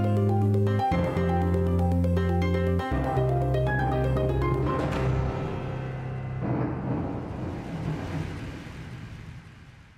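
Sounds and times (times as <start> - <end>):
low rumbling music: 0.0 - 9.8
timpani musical sting: 4.8 - 9.0.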